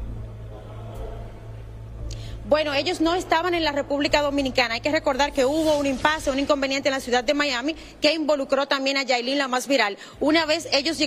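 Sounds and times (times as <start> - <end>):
low hum: 0.0 - 8.0.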